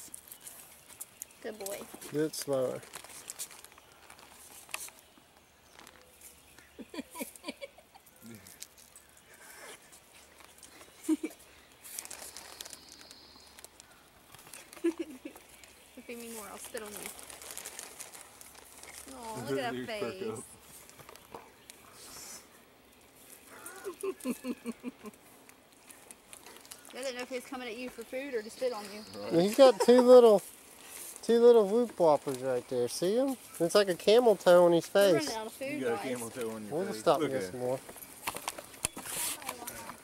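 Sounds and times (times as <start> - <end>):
person laughing: 6.8 - 8.0, 11.0 - 11.4, 14.8 - 15.4, 23.6 - 25.2, 29.5 - 30.2.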